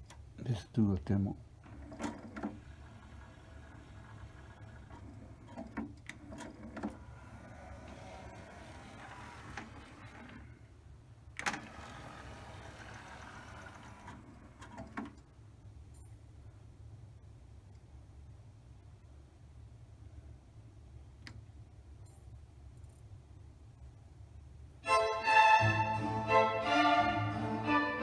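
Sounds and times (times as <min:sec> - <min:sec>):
cd tray motor running: 0:02.0 - 0:10.6, 0:11.4 - 0:15.1.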